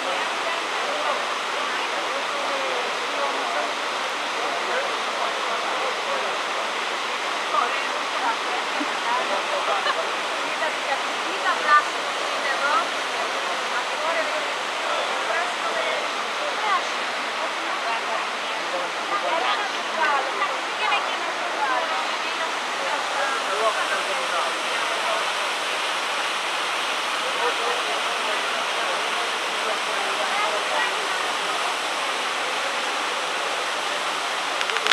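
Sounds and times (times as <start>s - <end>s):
small waterfall rushing: 0.0s - 34.9s
water splashes: 31.0s - 34.9s.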